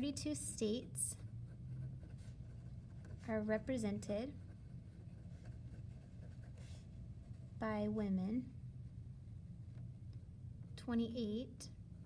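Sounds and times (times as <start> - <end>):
low steady hum: 0.0 - 12.0
pen scratching on paper: 1.2 - 7.5.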